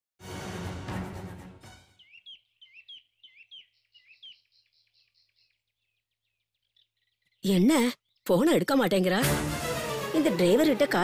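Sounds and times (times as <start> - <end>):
small bird chirping: 2.0 - 8.7.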